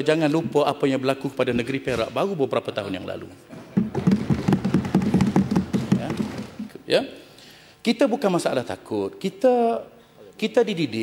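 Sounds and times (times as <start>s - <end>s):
hands thumping on wooden desks: 3.7s - 6.7s.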